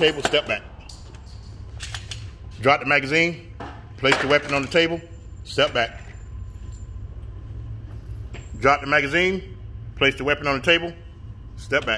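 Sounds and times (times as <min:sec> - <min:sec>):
room hum and rumble: 0:00.0 - 0:11.9.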